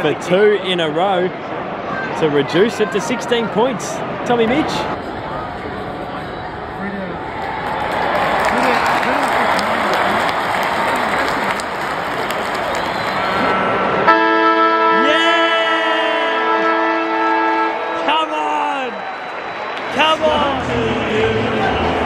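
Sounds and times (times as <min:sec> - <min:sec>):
stadium crowd noise: 0:00.0 - 0:22.0
steady music: 0:14.1 - 0:18.4.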